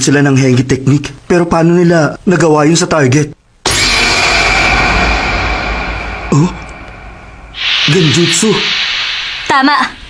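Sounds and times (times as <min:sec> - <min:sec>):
loud rushing noise: 0:03.7 - 0:10.0.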